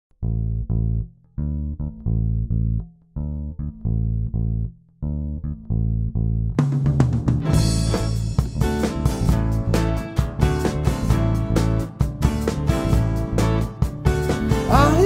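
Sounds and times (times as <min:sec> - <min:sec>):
plucked string riff: 0:00.2 - 0:15.0
rock band with drums: 0:06.6 - 0:15.0.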